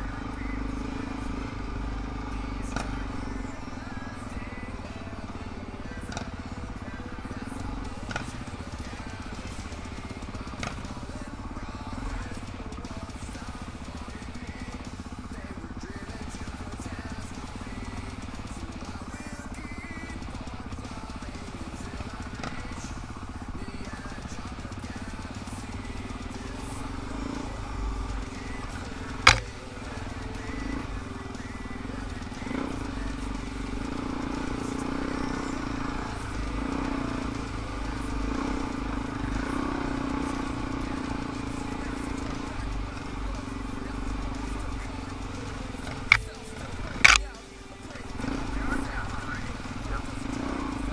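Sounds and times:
dirt bike engine running: 0.0 - 50.9
sharp knock: 29.2 - 29.6.

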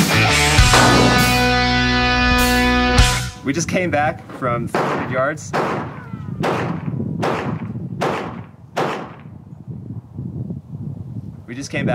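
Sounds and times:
gunshots with echo: 0.6 - 3.3, 4.6 - 9.4.

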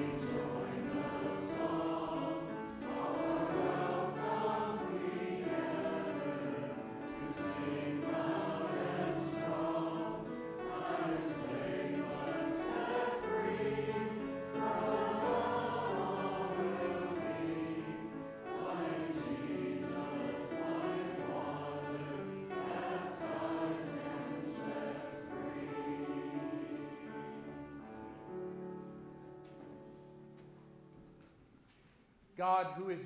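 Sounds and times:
group singing a hymn: 0.0 - 27.9.

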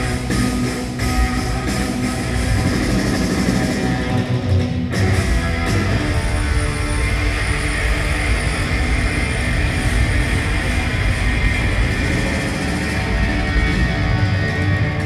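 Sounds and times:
electric guitar through loud amplifier: 0.0 - 15.0
rock band playing: 0.0 - 15.0.

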